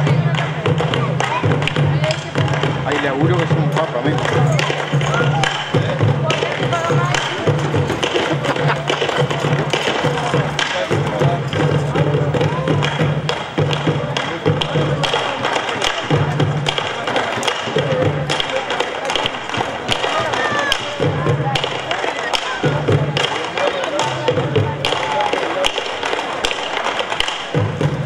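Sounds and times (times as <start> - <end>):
drums beaten with sticks: 0.0 - 28.0
sharp stick strikes: 12.8 - 27.9.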